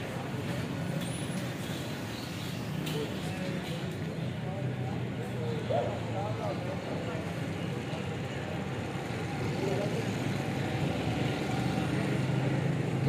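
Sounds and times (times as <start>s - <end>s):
faint distant voices: 0.0s - 13.0s.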